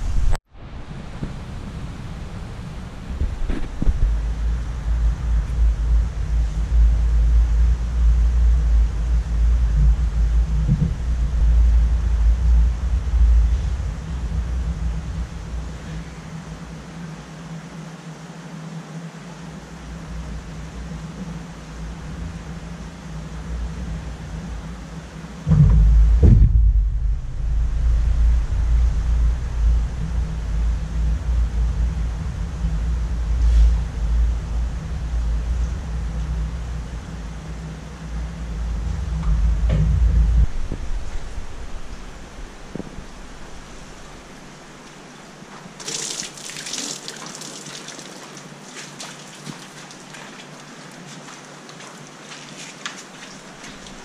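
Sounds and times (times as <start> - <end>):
muffled water rumble with thumps: 3.0 - 16.5, 20.3 - 46.0
water splashing and dripping: 45.6 - 54.0.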